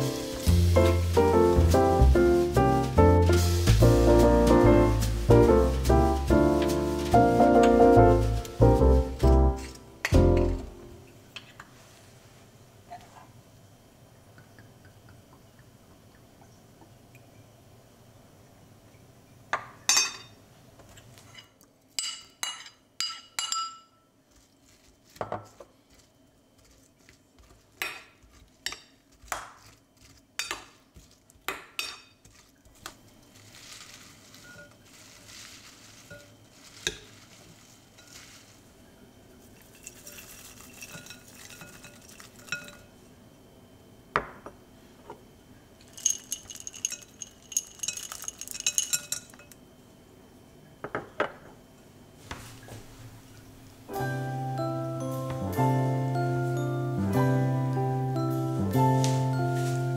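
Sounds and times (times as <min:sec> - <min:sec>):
dishware clinking on enamel bowl: 0:22.0 - 0:24.0, 0:39.7 - 0:42.9.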